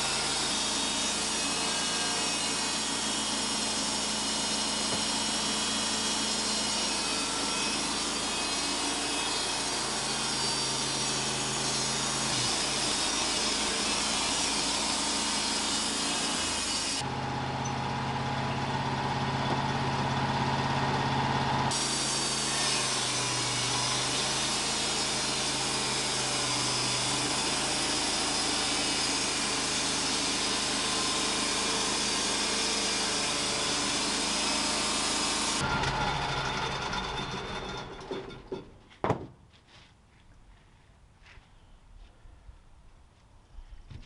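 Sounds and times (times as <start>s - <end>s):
band sawmill whirring: 0.0s - 38.6s
wooden board thunk: 4.9s - 5.1s, 38.5s - 39.4s
deeper engine hum: 17.1s - 21.7s
faint board handling sounds: 38.8s - 42.2s, 43.2s - 44.0s.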